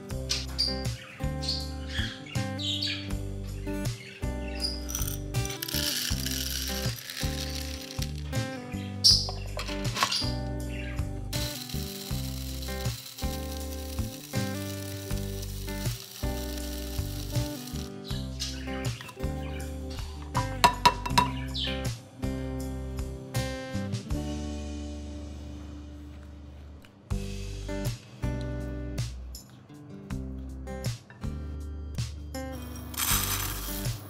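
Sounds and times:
background music: 0:00.0 - 0:34.0
electric coffee grinder grinding: 0:04.9 - 0:08.3, 0:11.3 - 0:18.0, 0:32.9 - 0:34.0.

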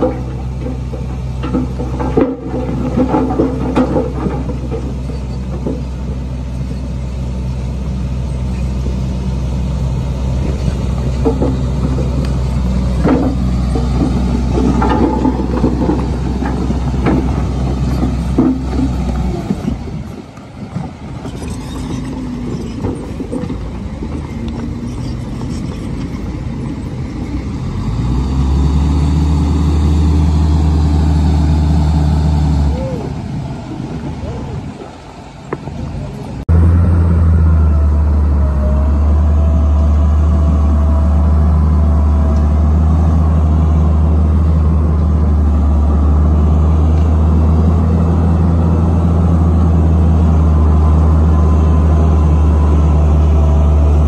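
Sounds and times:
diesel truck engines droning: 0:00.0 - 0:54.0.

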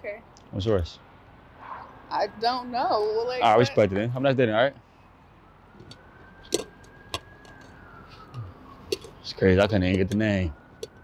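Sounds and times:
low street noise: 0:00.0 - 0:11.0
distant siren wailing: 0:01.0 - 0:11.0.

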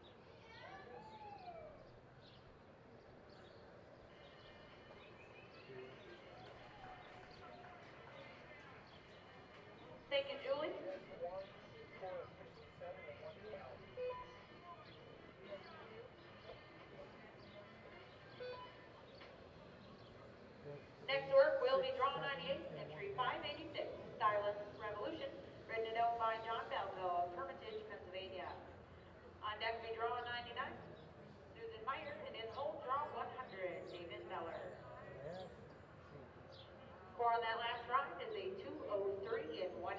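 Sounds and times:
distant voices talking: 0:00.3 - 0:39.9
faint distant voice: 0:05.5 - 0:24.8.

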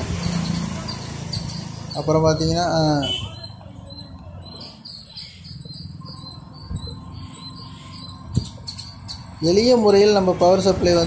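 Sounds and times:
rapid high-pitched chirping: 0:00.0 - 0:11.0.

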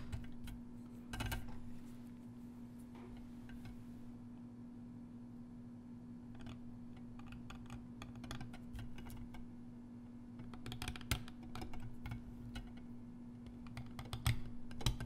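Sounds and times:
faint steady hum: 0:00.0 - 0:15.0.

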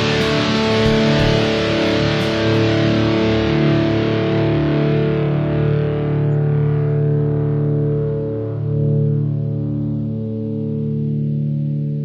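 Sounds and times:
instrumental music with held chords: 0:00.0 - 0:12.0.

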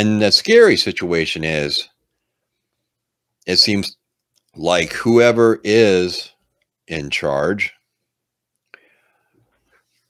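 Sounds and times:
man breathing softly: 0:08.7 - 0:10.0.

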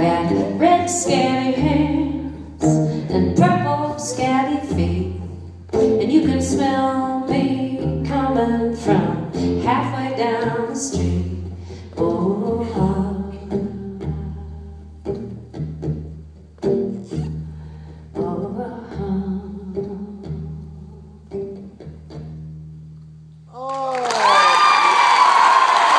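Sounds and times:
plucked acoustic strings: 0:00.0 - 0:23.3
audience cheering and applauding: 0:23.6 - 0:25.9.

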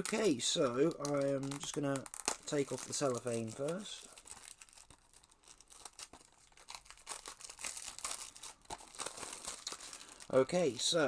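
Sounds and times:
cellophane wrap crinkling: 0:00.0 - 0:11.0.

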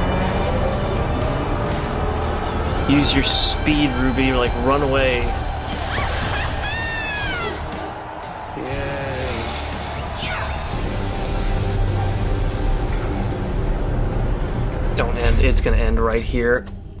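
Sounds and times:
background music with low bass: 0:00.0 - 0:17.0.

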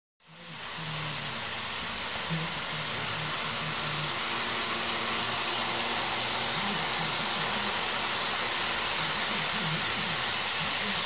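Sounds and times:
model train running on track: 0:00.2 - 0:11.0.

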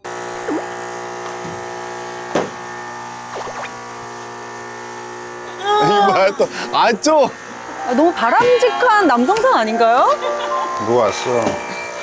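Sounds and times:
vacuum cleaner motor running: 0:03.9 - 0:12.0.

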